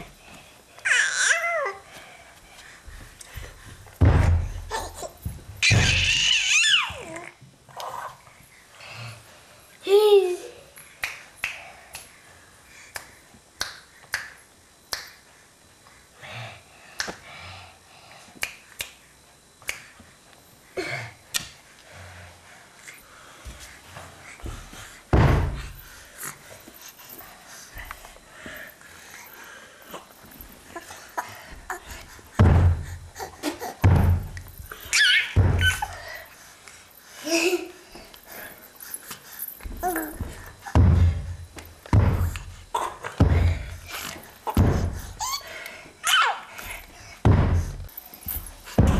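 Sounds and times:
finger snaps: 11.0s - 12.1s, 12.9s - 15.2s, 17.0s - 17.2s, 18.4s - 19.0s, 19.6s - 20.0s, 21.3s - 21.6s.

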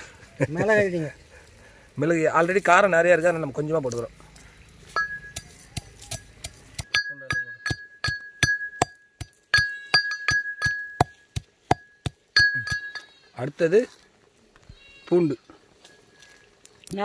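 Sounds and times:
iron pestle pounding in mortar: 5.0s - 13.0s.

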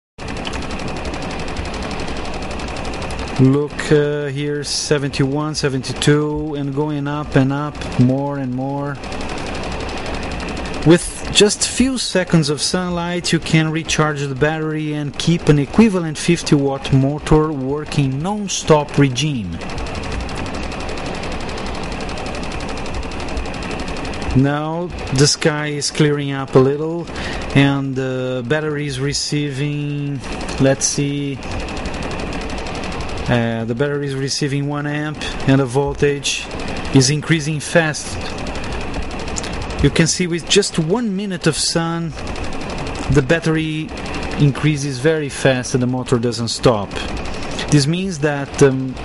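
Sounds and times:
electric motor rattling: 0.2s - 49.0s.

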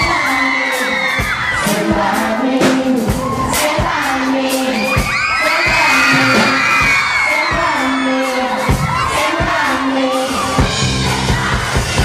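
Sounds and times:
crowd shouting and cheering: 0.0s - 12.0s
live music: 0.0s - 12.0s
steady kick-drum beat: 0.0s - 12.0s.

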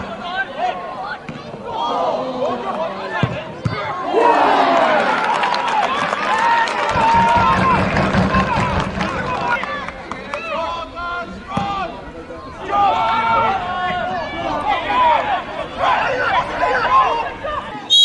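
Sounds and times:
crowd cheering and shouting: 0.0s - 18.0s
scattered clapping: 4.8s - 10.6s.

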